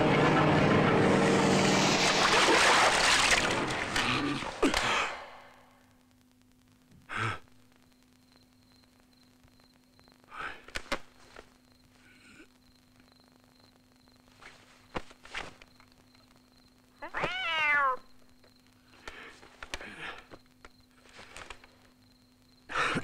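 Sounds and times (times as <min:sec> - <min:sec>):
faint steady hum: 0:00.0 - 0:23.0
soft rustling: 0:14.2 - 0:15.7
cat meowing: 0:17.0 - 0:18.2.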